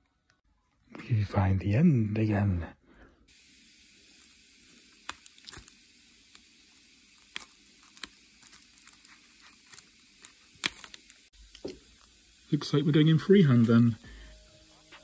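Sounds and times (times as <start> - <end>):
faint hiss: 1.9 - 15.0.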